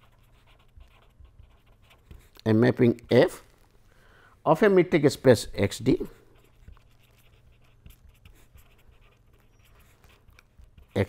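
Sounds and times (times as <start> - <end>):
pen scratching on paper: 0.0 - 3.3, 5.9 - 11.0.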